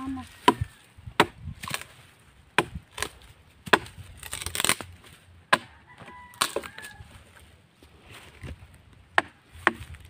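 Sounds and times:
dry brush crackling: 0.0 - 5.3
knife chopping strikes: 0.4 - 1.9, 2.5 - 4.8, 9.1 - 10.0.

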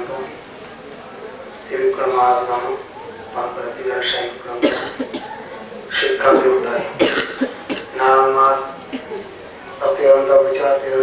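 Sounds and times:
man speaking into a microphone: 1.7 - 5.3, 5.9 - 7.2, 7.8 - 9.2, 9.8 - 11.0
man coughing: 4.6 - 5.4, 6.3 - 8.0.

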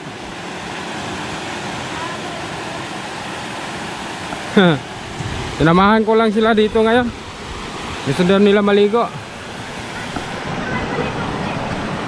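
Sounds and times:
river rushing over rocks: 0.0 - 12.0.

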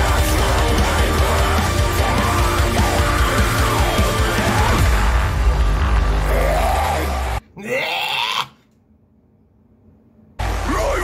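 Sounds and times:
electronic metalcore music: 0.0 - 7.4
vocal cry or growl: 6.2 - 8.6.

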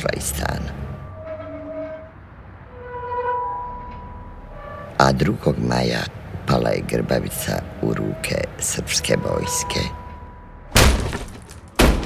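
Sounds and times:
metal swing creaking on chains: 0.8 - 5.6.

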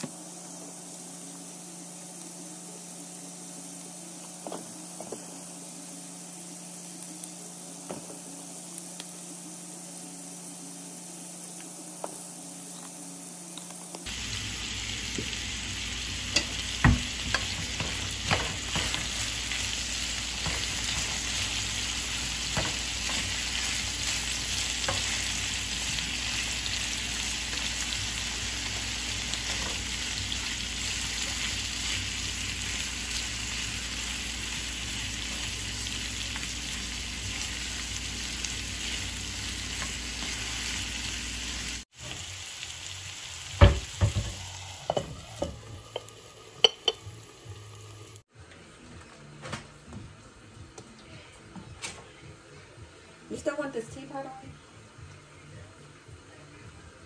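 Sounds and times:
vegetables sizzling in a skillet: 0.0 - 48.3.

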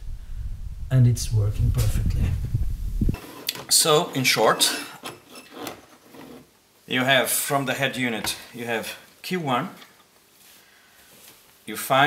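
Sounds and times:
faint rustling and handling noise: 3.1 - 12.0.

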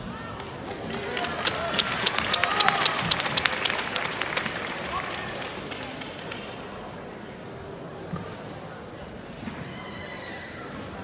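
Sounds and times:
murmur of crowd voices: 0.0 - 11.0
spectators clapping: 0.4 - 6.5.

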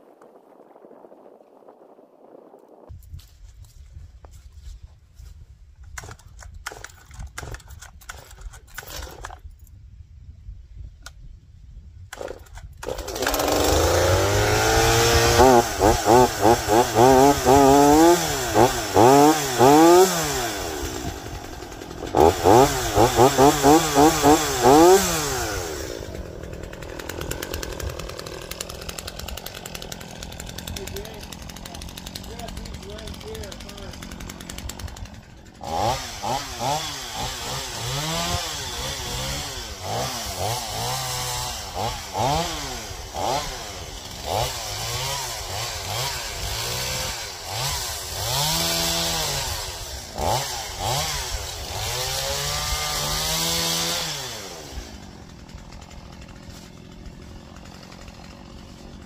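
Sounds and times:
chainsaw revving: 12.1 - 59.0.

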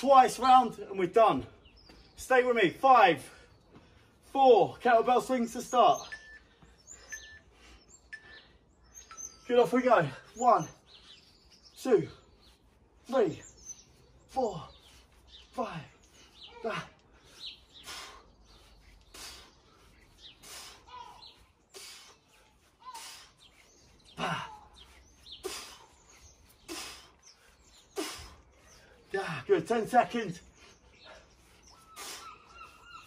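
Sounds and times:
bird chirping: 0.0 - 33.0.

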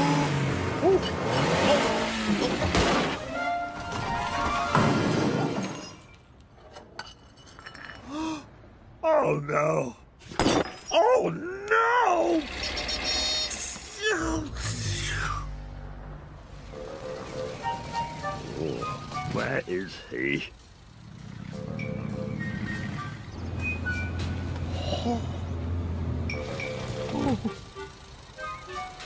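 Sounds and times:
background music: 3.1 - 5.2, 14.3 - 20.5, 26.3 - 29.0.

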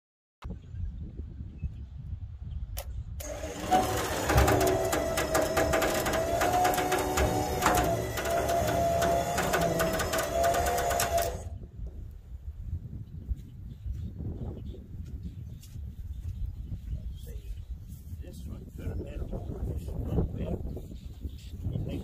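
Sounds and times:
electric winch motor whine: 3.2 - 11.5.

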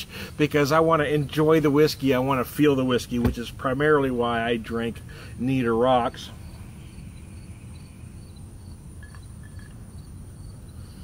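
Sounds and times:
insects chirping: 0.0 - 11.0
low steady rumble: 0.0 - 11.0.

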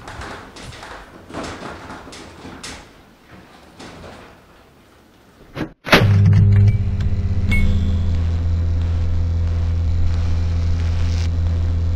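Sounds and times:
neon sign electrical hum: 6.0 - 11.9
small ding: 6.1 - 8.3.

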